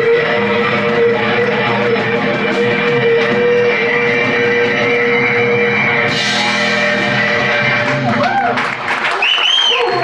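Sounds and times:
live blues band playing: 0.0 - 9.1
electric guitars: 0.0 - 10.0.

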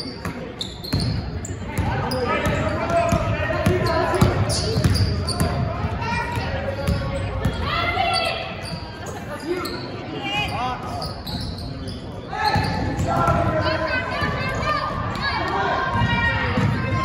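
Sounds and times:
sneakers squeaking: 0.0 - 14.6
voices of players and onlookers: 0.0 - 17.0
basketball bouncing: 1.8 - 7.6, 12.6 - 13.6.

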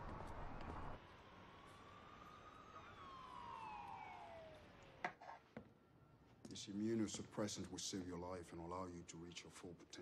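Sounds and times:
faint siren wail: 0.0 - 6.8.

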